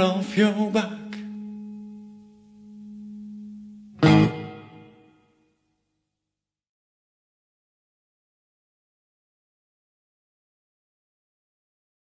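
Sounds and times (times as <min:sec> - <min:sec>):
acoustic guitar note ringing: 0:00.4 - 0:05.4.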